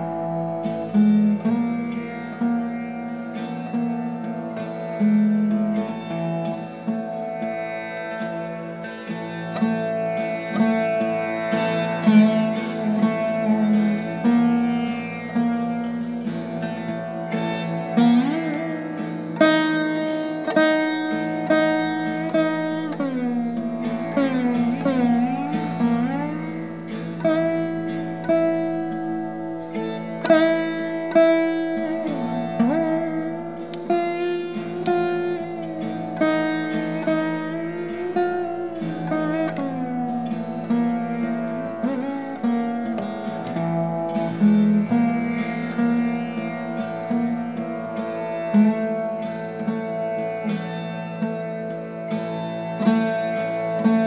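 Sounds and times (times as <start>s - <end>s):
plucked bass sitar slides: 0.0s - 54.0s.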